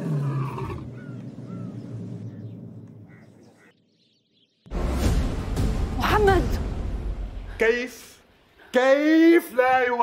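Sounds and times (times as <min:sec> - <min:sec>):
lion roaring: 0:00.0 - 0:01.2.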